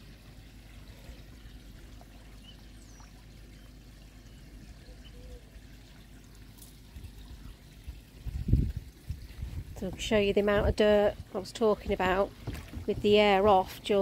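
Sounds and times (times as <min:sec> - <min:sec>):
pond water trickling: 0:00.0 - 0:14.0.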